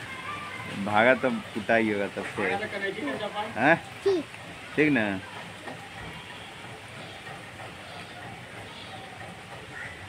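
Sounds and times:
outdoor background hiss: 0:00.0 - 0:10.0.

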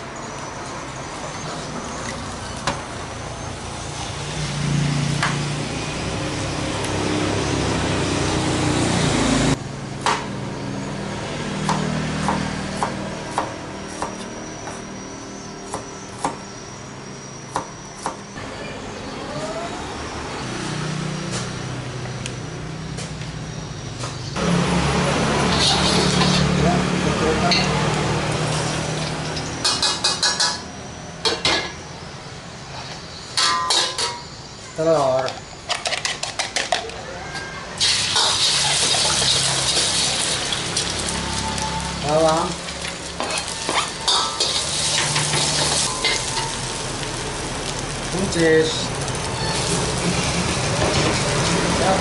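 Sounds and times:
metal ladle scraping wok: 0:25.4 - 0:26.6, 0:37.8 - 0:42.0, 0:42.7 - 0:46.9
food sizzling in oil: 0:37.8 - 0:51.7.

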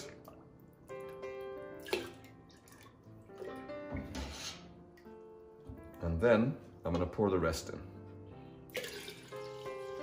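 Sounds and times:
background music: 0:00.0 - 0:10.0
water splash: 0:01.8 - 0:02.8
water pouring into pot: 0:08.7 - 0:10.0.

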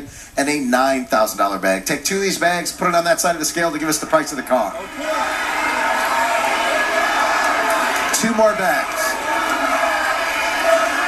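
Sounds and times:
studio audience shouting: 0:03.7 - 0:11.0.

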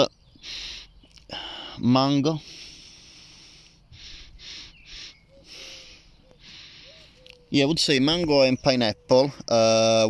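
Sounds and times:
man sniffing: 0:02.4 - 0:07.2.

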